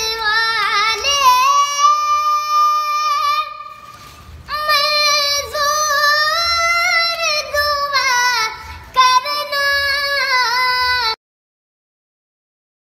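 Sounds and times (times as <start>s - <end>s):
boy singing: 0.0s - 11.2s.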